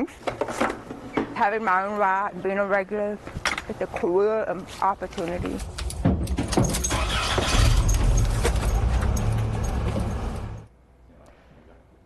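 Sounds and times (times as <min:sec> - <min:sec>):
truck engine rumbling: 0:05.2 - 0:10.7.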